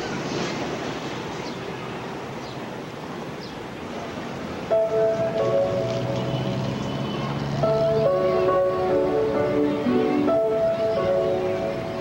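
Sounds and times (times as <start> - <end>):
outdoor background noise: 0.0 - 12.0
soundtrack music: 4.7 - 6.9, 7.6 - 12.0.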